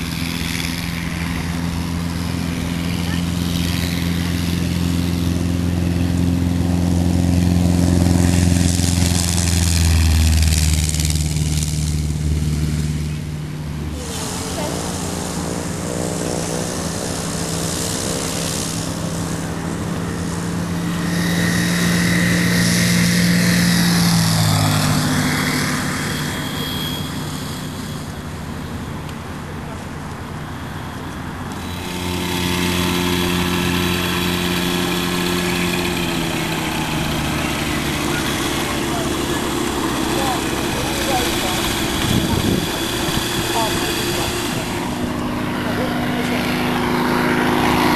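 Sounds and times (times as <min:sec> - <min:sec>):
microlight engines and propellers: 0:00.0 - 0:47.9.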